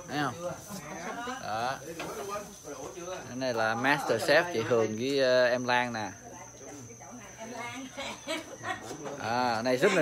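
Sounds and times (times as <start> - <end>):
quiet background talk: 0.0 - 10.0.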